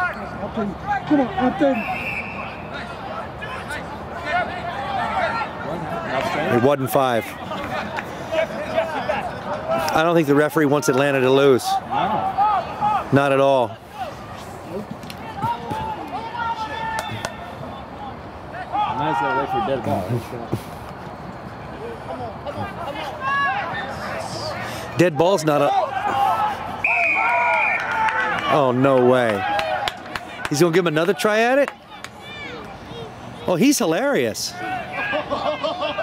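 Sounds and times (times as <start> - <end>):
indistinct shouting: 15.2 - 19.8
men shouting: 15.2 - 20.0, 21.8 - 32.6, 33.7 - 36.0.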